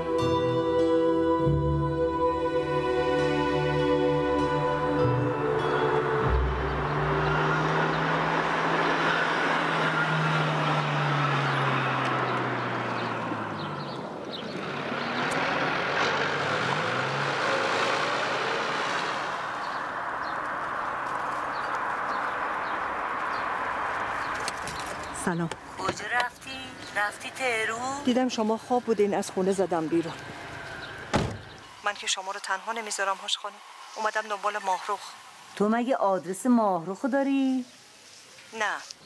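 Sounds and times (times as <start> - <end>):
steady road noise: 0.0 - 39.0
cars driving past: 2.4 - 38.4.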